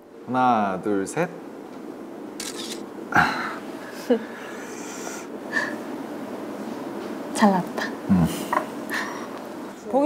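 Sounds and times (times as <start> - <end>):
camera shutter click: 2.4 - 2.8
camera shutter hiss: 2.4 - 2.9.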